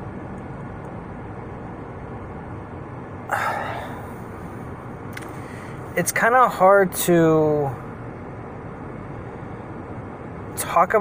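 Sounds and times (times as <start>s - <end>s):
car cabin rumble and hiss: 0.0s - 11.0s.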